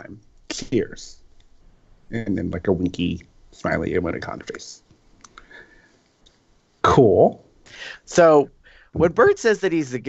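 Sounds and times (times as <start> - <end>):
man speaking: 0.0 - 1.2, 2.1 - 4.8, 6.8 - 10.0
faint clicks: 4.8 - 6.4.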